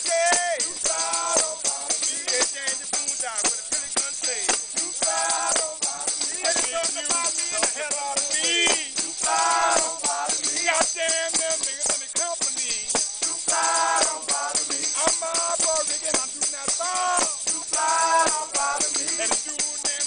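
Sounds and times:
voices chanting in phrases: 0.0 - 11.7, 13.1 - 19.9
hand frame drums beating: 0.0 - 20.0
tambourines jingling: 0.0 - 20.0.

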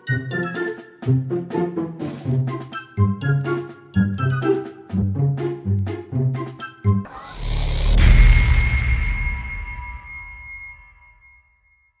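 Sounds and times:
low bass: 7.1 - 10.1
high ringing tone: 7.6 - 12.0.

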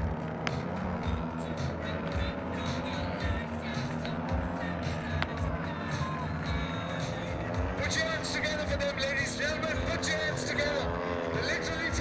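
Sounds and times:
crowd voices: 0.0 - 12.0
model aircraft engines buzzing: 0.0 - 12.0.

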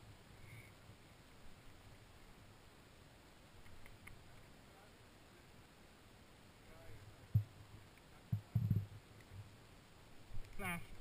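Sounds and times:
dull low thumps: 7.3 - 7.6, 8.2 - 9.5.

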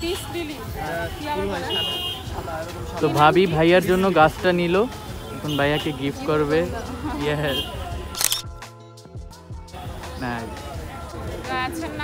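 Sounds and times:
background music: 0.0 - 12.0
camera shutter click: 8.2 - 8.5.

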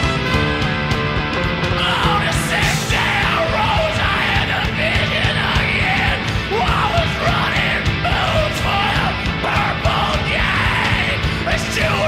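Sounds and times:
drums: 0.0 - 12.0
loud rock music: 0.0 - 12.0
singer yelling: 1.8 - 12.0.

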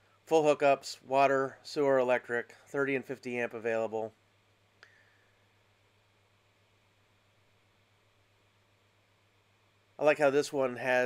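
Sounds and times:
faint click: 4.8 - 5.1.

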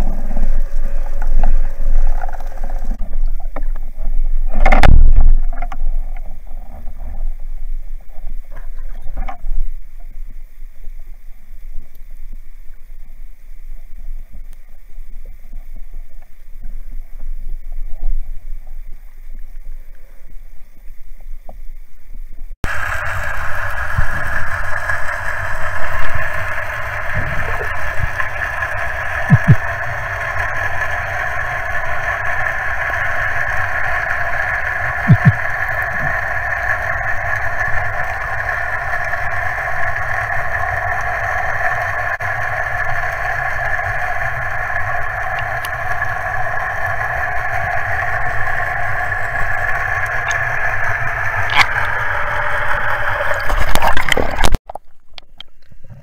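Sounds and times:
low rumble of water: 0.0 - 56.0
underwater boat engine drone: 0.0 - 56.0.

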